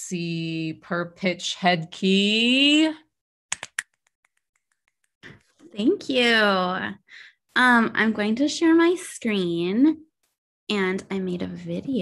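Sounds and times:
fingers snapping: 3.5s - 5.0s.

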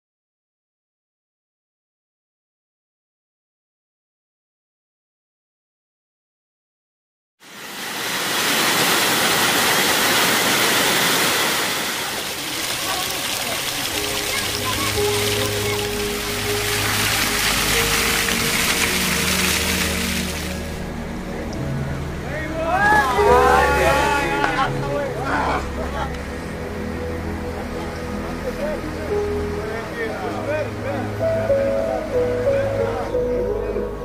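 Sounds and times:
waterfall splashing and rushing: 7.4s - 33.7s
background music with held notes: 12.9s - 34.0s.

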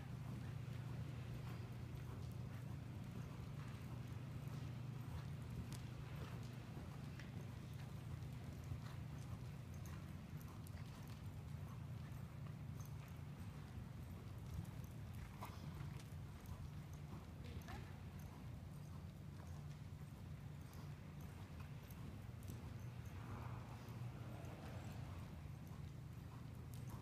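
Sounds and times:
horse hoofbeats trotting on dirt: 0.0s - 27.0s
steady low hum: 0.0s - 27.0s.

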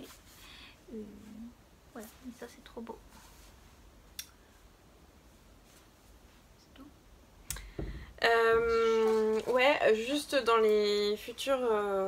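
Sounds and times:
soft low bump: 7.6s - 8.9s.

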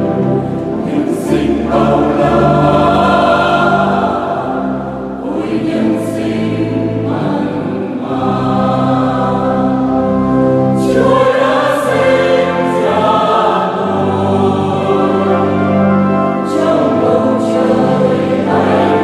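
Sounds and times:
mixed choir singing a hymn: 0.0s - 19.0s.

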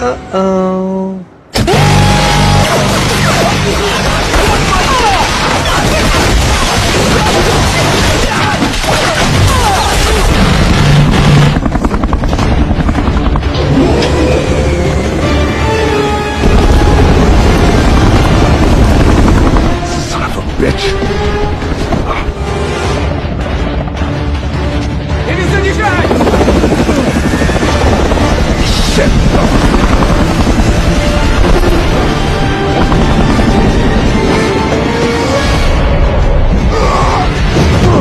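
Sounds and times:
helicopter rotor chopping: 10.2s - 22.1s, 23.3s - 35.8s.

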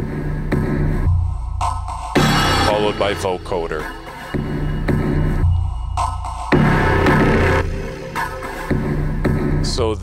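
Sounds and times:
sharp synth hits on the beat: 2.1s - 9.0s
held low synth bass note: 2.2s - 5.9s.

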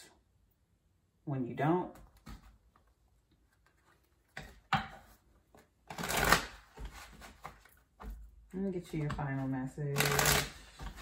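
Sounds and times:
cards being shuffled: 5.5s - 8.2s.

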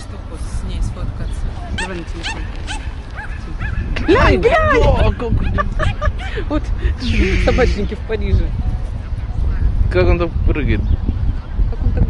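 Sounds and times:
steady low rumble: 0.0s - 12.0s
dog yipping: 1.7s - 4.2s.

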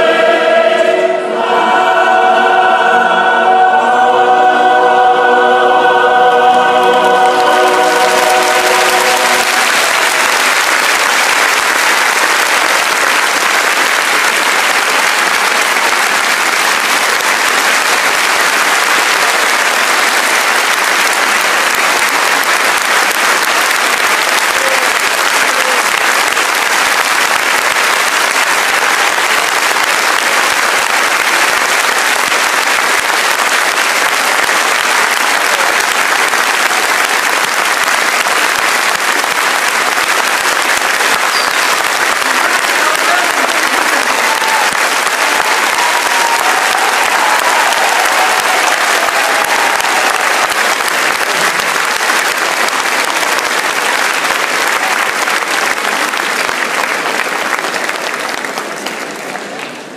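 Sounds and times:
audience applauding: 4.2s - 59.9s.

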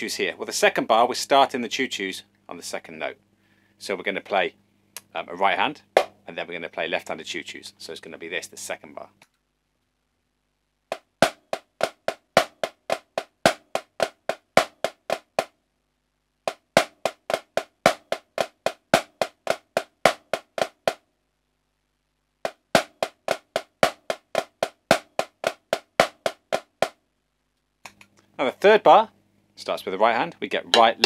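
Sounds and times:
snare drum strokes: 10.9s - 15.6s, 16.5s - 21.0s, 22.5s - 27.0s.

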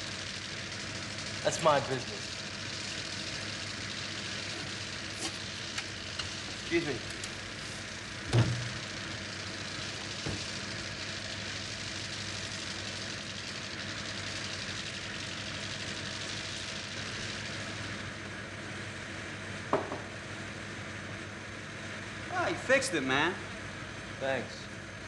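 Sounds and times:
steady hiss: 0.0s - 18.5s.

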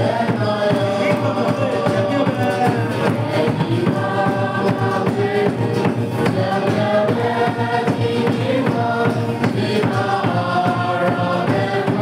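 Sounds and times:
acoustic guitar: 0.0s - 12.0s
group singing gospel song: 0.0s - 12.0s
steady drum beat: 0.0s - 12.0s.

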